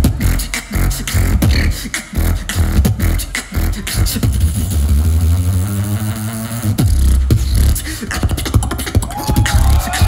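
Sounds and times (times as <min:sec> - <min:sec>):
beatboxing through microphone: 0:00.0 - 0:10.0.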